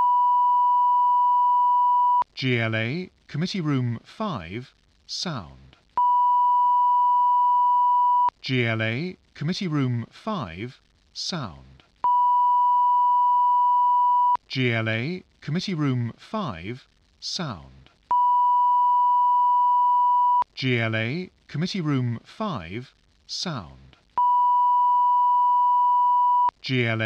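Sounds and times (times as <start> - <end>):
steady test tone beep: 0.0 - 2.2, 6.0 - 8.3, 12.1 - 14.4, 18.1 - 20.4, 24.2 - 26.6.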